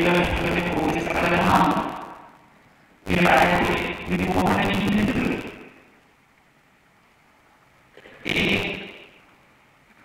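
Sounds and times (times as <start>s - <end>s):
man's voice over public address: 0.0s - 2.4s, 3.0s - 5.8s, 8.2s - 9.0s.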